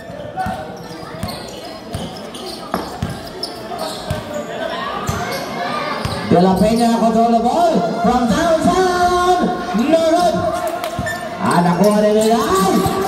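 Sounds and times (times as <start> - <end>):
murmur of spectators: 0.0 - 13.0
basketball bouncing on hard court: 0.1 - 3.3, 6.0 - 6.2.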